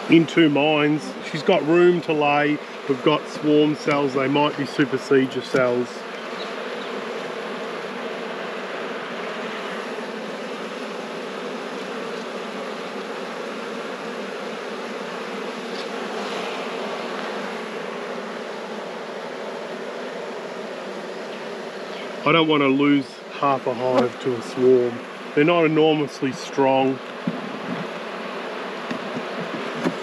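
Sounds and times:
bees buzzing: 0.0s - 30.0s.

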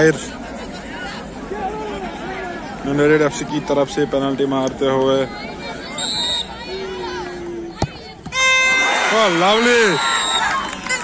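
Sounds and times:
murmur of spectators: 0.0s - 11.0s.

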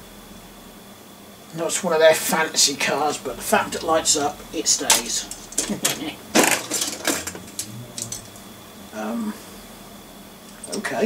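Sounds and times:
toy cars clinking in a box: 6.4s - 7.7s.

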